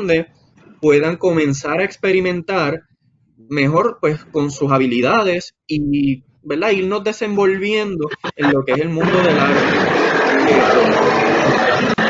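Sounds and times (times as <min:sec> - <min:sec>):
man's voice: 0:00.0 - 0:02.8, 0:03.5 - 0:12.0.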